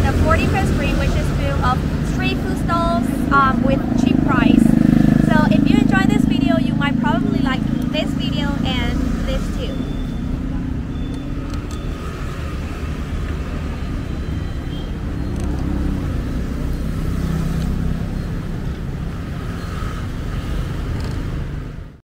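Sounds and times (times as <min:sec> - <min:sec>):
low rumble of motor vehicles: 0:00.0 - 0:22.0.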